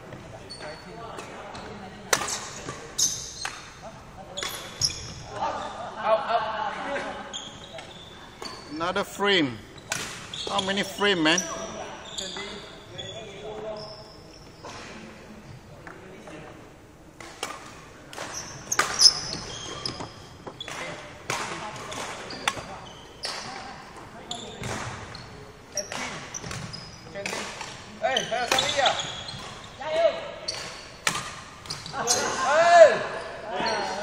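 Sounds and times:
shoes squeaking on wooden floor: 0.0s - 1.8s, 7.3s - 9.0s, 9.7s - 14.9s, 18.2s - 20.9s, 21.9s - 27.2s, 28.0s - 30.8s, 31.6s - 32.4s
racket hitting shuttlecock: 2.1s - 3.7s, 17.2s - 22.7s, 30.5s - 31.8s.

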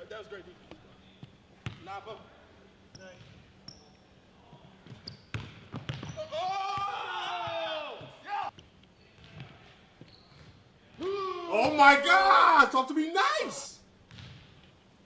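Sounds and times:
sneaker squeaks: 2.9s - 6.9s, 8.0s - 11.0s
basketball bouncing on hardwood: 4.9s - 6.2s, 14.1s - 14.4s.

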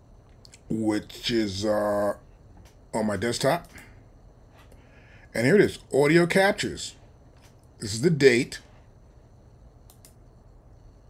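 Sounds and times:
low room hum: 0.0s - 11.0s
computer mouse clicks: 9.8s - 10.2s.

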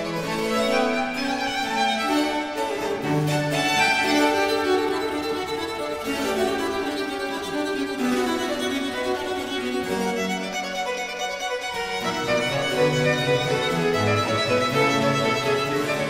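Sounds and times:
baroque chamber music: 0.0s - 16.0s.

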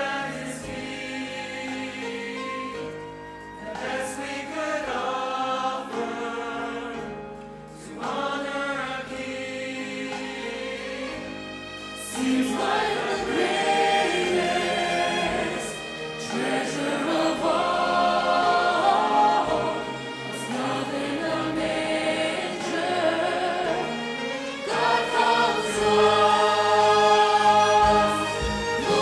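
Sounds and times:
choir singing: 0.0s - 29.0s
orchestral accompaniment: 0.0s - 29.0s.

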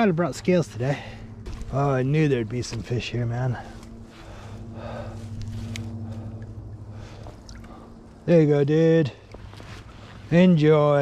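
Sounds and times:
low steady hum: 0.0s - 11.0s
water sloshing and gurgling: 0.7s - 10.7s.

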